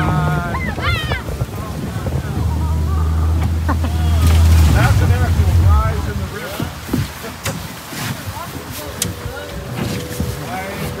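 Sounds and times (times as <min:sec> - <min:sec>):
outboard motor low hum: 0:00.0 - 0:11.0
water rushing against hull: 0:00.0 - 0:11.0.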